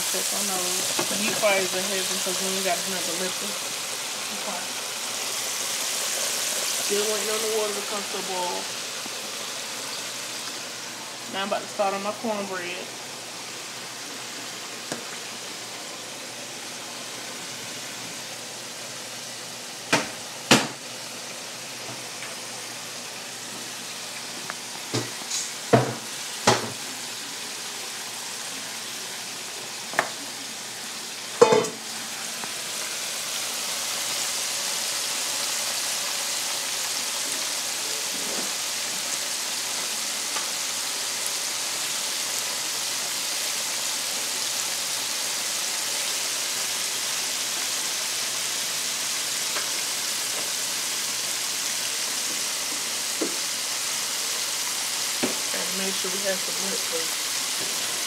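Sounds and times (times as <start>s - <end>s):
oil sizzling in deep fryer: 0.0s - 58.0s
kitchen items knocking and clattering: 31.4s - 31.8s.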